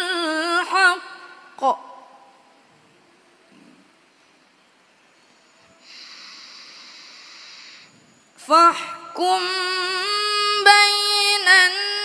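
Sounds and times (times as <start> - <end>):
in-breath into microphone: 5.6 - 8.2.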